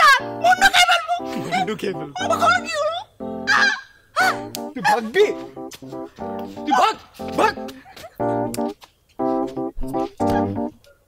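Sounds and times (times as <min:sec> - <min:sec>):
light background music: 0:00.0 - 0:10.8.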